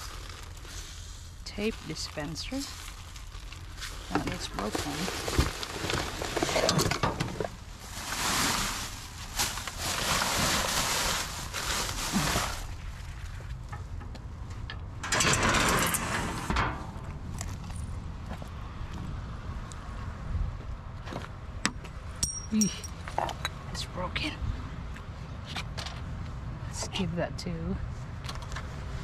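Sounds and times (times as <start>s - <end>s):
plastic bags and cardboard rustling: 0.0s - 14.0s.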